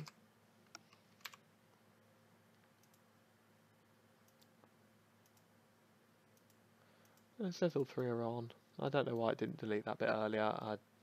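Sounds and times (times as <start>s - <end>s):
quiet computer clicks: 2.5s - 3.1s, 4.2s - 5.5s, 6.3s - 8.2s, 9.0s - 9.4s.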